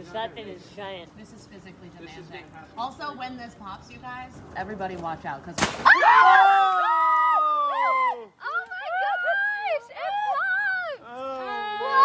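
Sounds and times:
people screaming high-pitched: 5.8 - 12.0.

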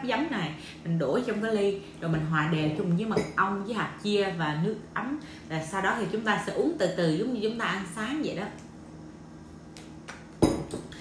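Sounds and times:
bottle knocking on table: 10.4 - 10.9.

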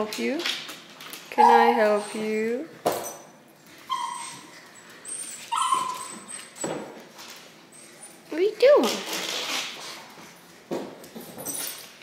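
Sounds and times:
dog whining and whimpering: 1.3 - 2.4, 3.8 - 6.9.

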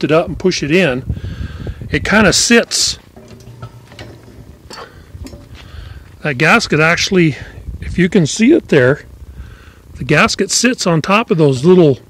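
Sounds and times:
wind and handling rumble: 0.1 - 12.0.

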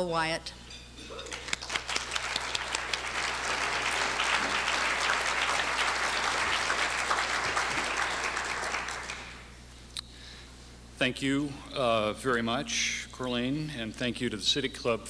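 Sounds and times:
audience applauding: 1.3 - 9.5.

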